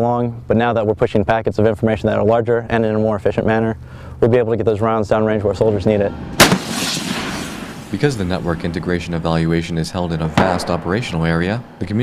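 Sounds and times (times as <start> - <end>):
rolling rumble: 5.0 - 12.0
artillery gun blast: 6.4 - 9.1, 10.2 - 11.6.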